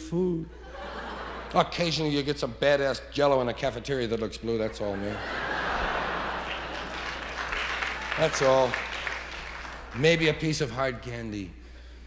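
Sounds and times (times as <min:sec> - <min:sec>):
audience laughing: 0:00.6 - 0:02.2, 0:04.8 - 0:10.0
audience applauding: 0:05.3 - 0:10.6.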